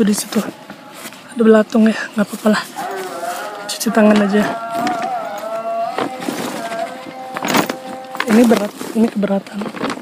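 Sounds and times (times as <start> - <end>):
fabric bag rustling and scraping: 0.0 - 1.4, 2.0 - 10.0
faint melodic tones: 0.0 - 9.5.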